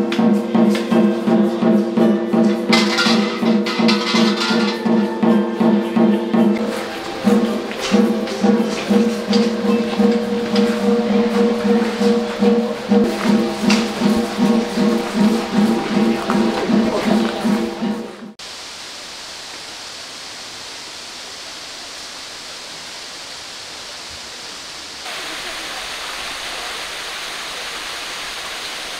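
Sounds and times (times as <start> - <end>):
music with pulsing beat: 0.0 - 18.4
small waterfall rushing: 2.7 - 28.9.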